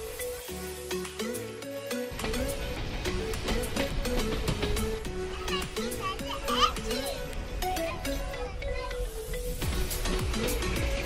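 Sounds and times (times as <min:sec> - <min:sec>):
background music with held notes: 0:00.0 - 0:11.0
young child crying: 0:05.3 - 0:09.0.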